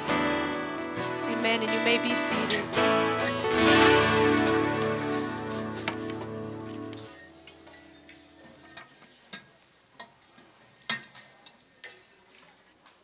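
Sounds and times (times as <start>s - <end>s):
live band chord: 0.0s - 7.2s.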